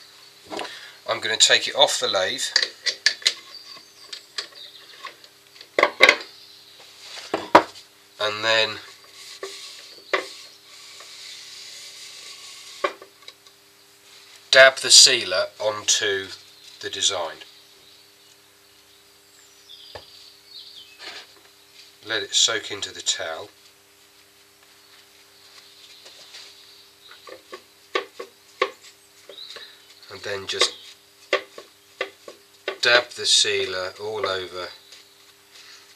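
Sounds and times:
faint steady hum: 0:00.0 - 0:35.9
sharp taps and knocks: 0:27.1 - 0:29.7, 0:30.5 - 0:33.0.

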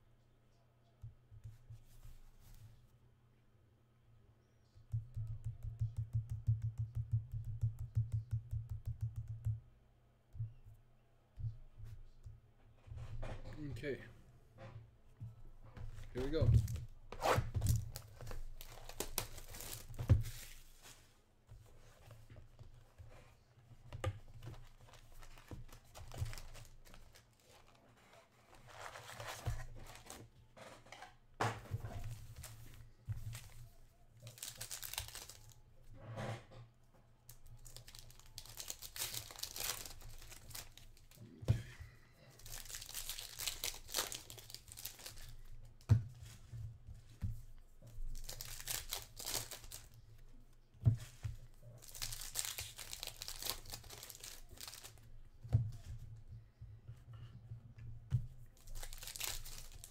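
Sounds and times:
foil packs crinkling: 0:34.3 - 0:35.6, 0:37.6 - 0:40.8, 0:42.4 - 0:45.3, 0:48.2 - 0:49.9, 0:51.8 - 0:55.0, 0:58.7 - 0:59.9
packaging tearing: 0:58.7 - 0:59.9.

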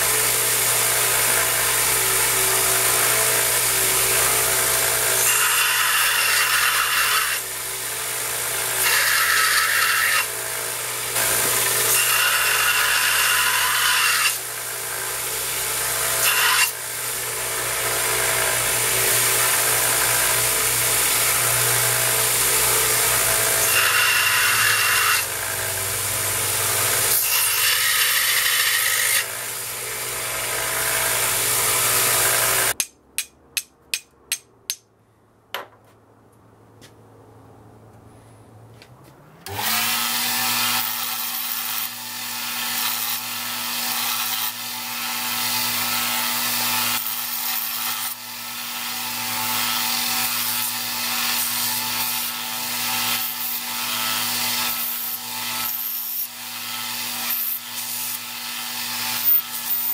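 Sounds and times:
belt grinder grinding steel: 0:00.0 - 0:32.8, 0:39.5 - 0:59.9
sharp taps: 0:32.8 - 0:34.8.

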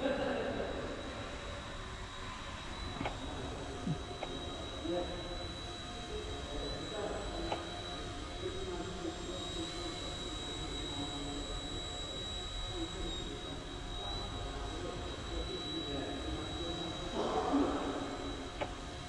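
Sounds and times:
toy helicopter rotor whine: 0:00.0 - 0:19.0.

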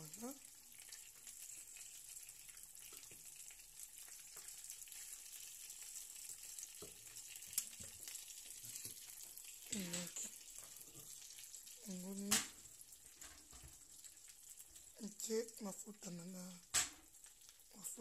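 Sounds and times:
oil sizzling in a frying pan: 0:00.0 - 0:18.0.

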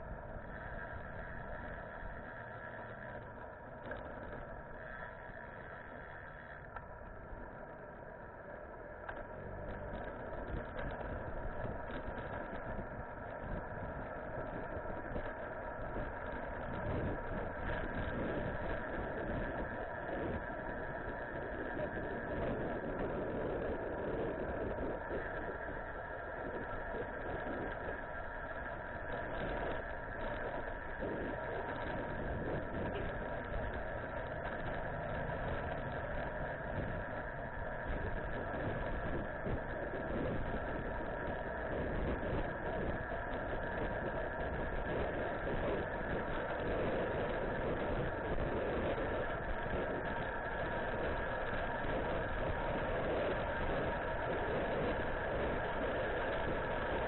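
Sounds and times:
steady multi-tone whine: 0:00.0 - 0:57.0
wind and road noise from bicycle: 0:00.0 - 0:57.0.

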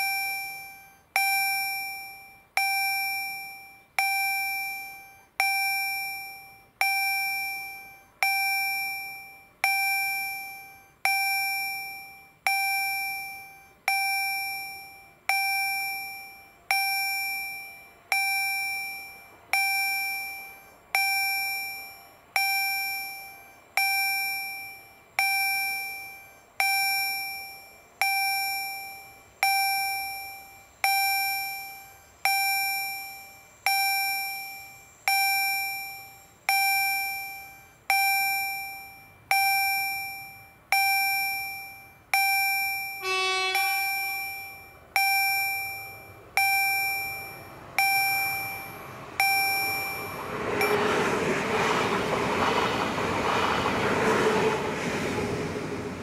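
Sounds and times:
level crossing warning bell: 0:00.0 - 0:56.0.

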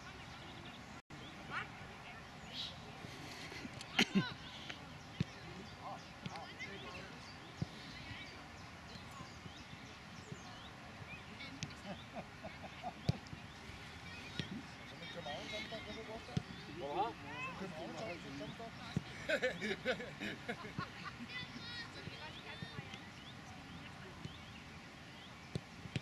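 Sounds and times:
distant chatter and calls: 0:00.0 - 0:26.0.

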